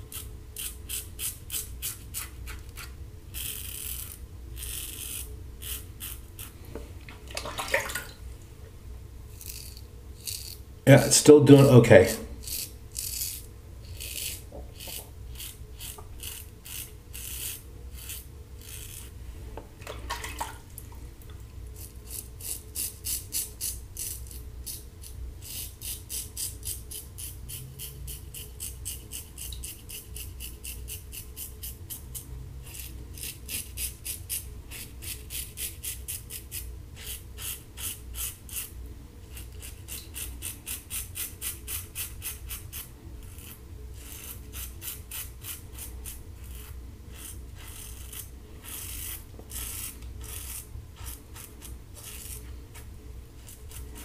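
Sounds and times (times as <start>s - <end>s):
razor rasping through stubble: 0.0s - 6.6s, 9.3s - 10.6s, 11.6s - 19.2s, 21.8s - 54.0s.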